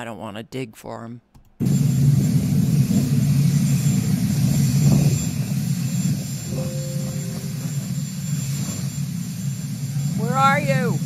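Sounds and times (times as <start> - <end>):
jet aircraft rumble and whine: 1.6 - 11.0.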